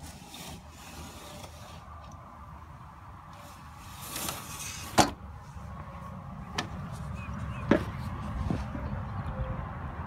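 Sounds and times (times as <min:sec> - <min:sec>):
window sliding along metal track: 0:00.0 - 0:05.6.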